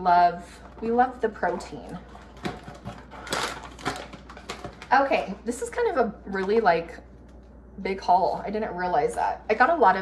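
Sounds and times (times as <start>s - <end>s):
plastic rustling: 0.5s - 5.4s.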